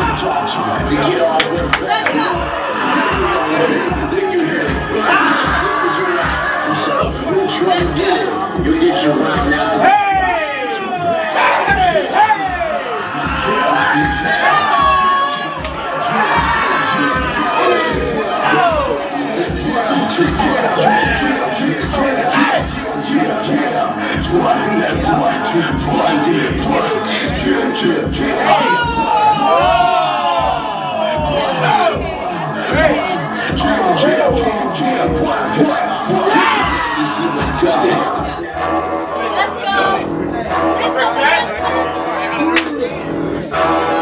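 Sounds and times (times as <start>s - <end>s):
crowd yelling: 0.0s - 44.0s
music beat thumps: 0.0s - 44.0s.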